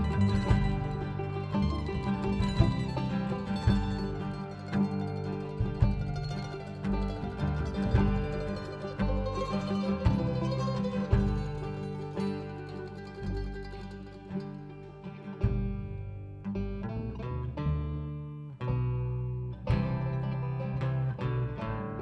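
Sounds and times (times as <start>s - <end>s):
low sustained notes: 0.0s - 22.0s
mandolin picking: 0.0s - 22.0s.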